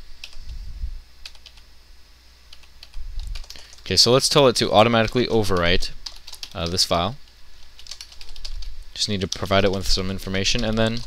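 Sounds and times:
computer keyboard clicks: 0:02.5 - 0:03.8, 0:05.1 - 0:06.8, 0:07.7 - 0:08.7.

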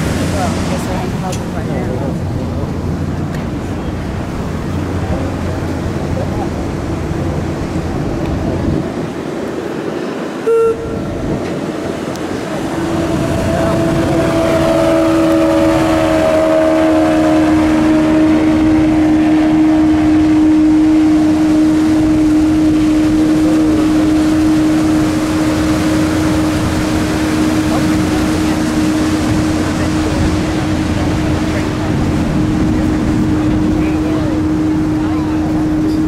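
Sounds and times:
outboard motorboat passing: 0:00.0 - 0:36.0
water and wind rushing: 0:00.0 - 0:36.0
short beep: 0:10.4 - 0:11.0.

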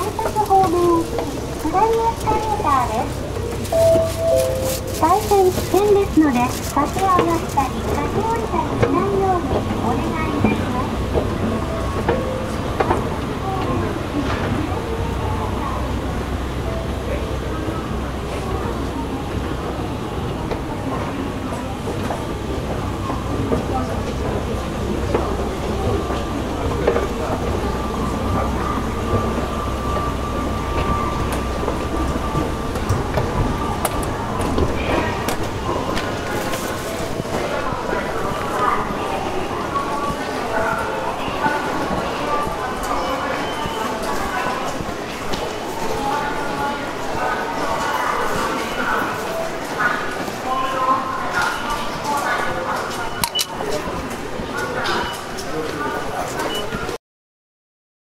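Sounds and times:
low rumble of train: 0:00.0 - 0:57.0
public address announcement: 0:00.0 - 0:57.0
held tone dropping lower: 0:03.7 - 0:05.0.

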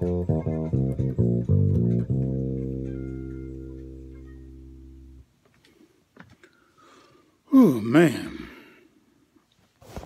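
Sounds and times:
electric bass low note: 0:00.0 - 0:05.2.

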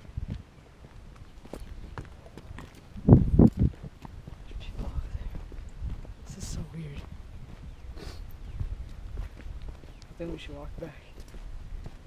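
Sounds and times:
footsteps outdoors: 0:00.0 - 0:12.0.

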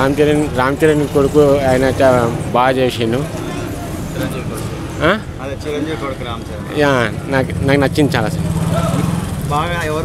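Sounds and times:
men talking: 0:00.0 - 0:10.0
vehicle engine droning: 0:00.0 - 0:10.0.

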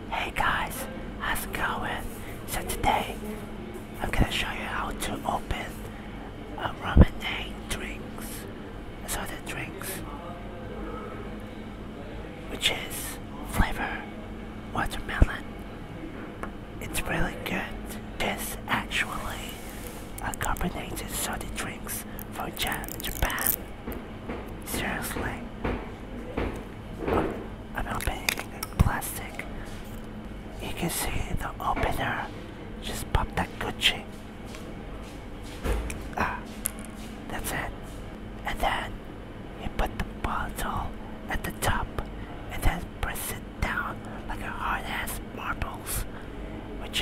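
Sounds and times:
soft whispering: 0:00.0 - 0:11.3, 0:12.4 - 0:15.5, 0:16.8 - 0:23.7, 0:24.6 - 0:25.5, 0:27.7 - 0:34.2, 0:36.1 - 0:39.0, 0:39.6 - 0:47.0
plastic cap clicks and handling: 0:28.0 - 0:28.7.

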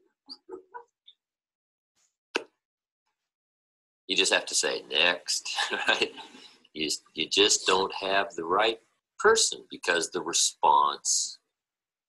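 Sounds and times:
person chuckling: 0:05.4 - 0:06.4.

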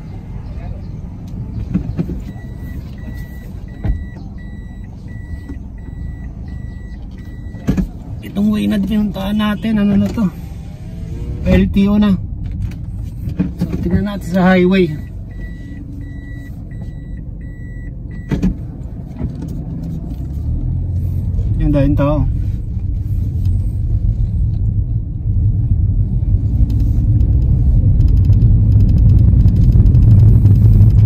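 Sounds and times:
car engine and road noise: 0:00.0 - 0:31.0
car chime beeps: 0:02.2 - 0:07.8, 0:14.1 - 0:18.4.

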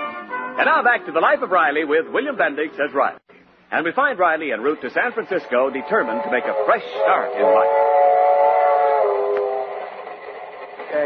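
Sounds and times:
steam locomotive whistle: 0:05.5 - 0:10.3.

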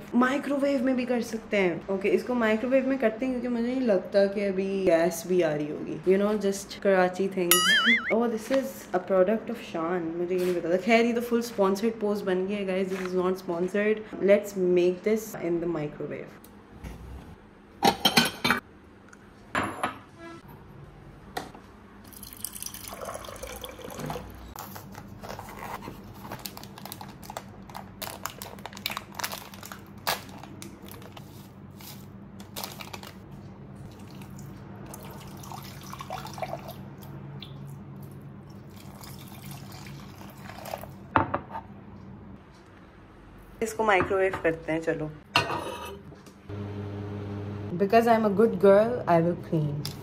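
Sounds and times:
water pouring into bowl: 0:22.1 - 0:24.4, 0:33.9 - 0:36.8, 0:38.6 - 0:41.0
foil sachet tearing: 0:24.6 - 0:33.2.

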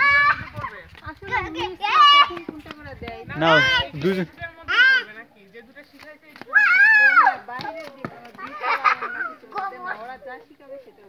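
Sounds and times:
children playing and shouting: 0:00.0 - 0:05.3, 0:06.4 - 0:11.0.

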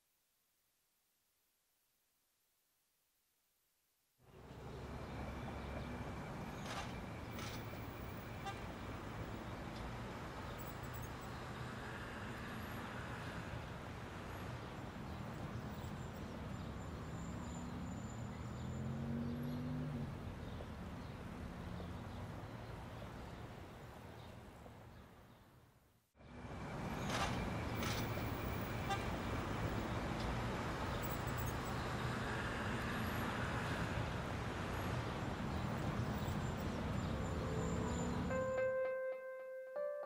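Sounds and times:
car and motorcycle engines rumbling: 0:04.4 - 0:24.9, 0:26.9 - 0:38.3.

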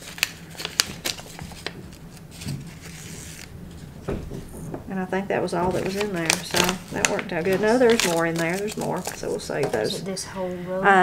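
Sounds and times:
paper packet rustling: 0:00.0 - 0:04.7, 0:05.4 - 0:10.1.

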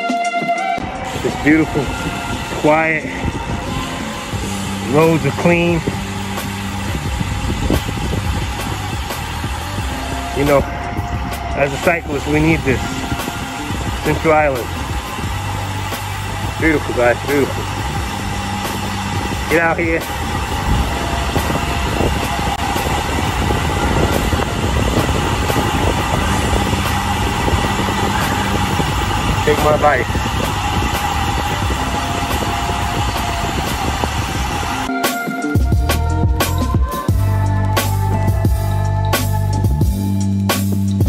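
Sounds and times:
tyre noise on road: 0:00.8 - 0:34.9
wind noise on microphone: 0:00.8 - 0:34.9
bicycle rolling over asphalt: 0:01.0 - 0:34.9.

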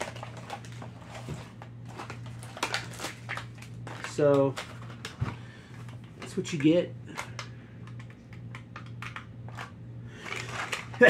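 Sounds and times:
plastic packaging crackling: 0:00.0 - 0:07.4, 0:10.2 - 0:11.0
steady low hum: 0:00.0 - 0:11.0.

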